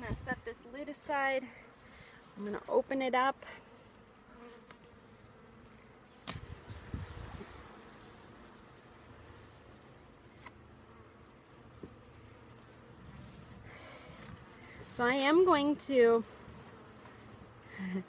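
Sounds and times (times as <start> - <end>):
honeybee colony humming: 0.0 - 18.0.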